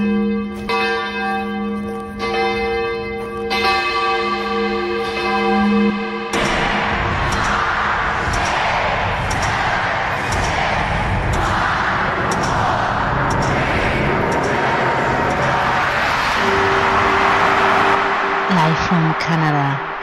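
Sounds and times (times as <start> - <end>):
deep bell tolling: 0.0 - 7.0, 12.1 - 19.9
dense rushing noise: 6.4 - 18.5.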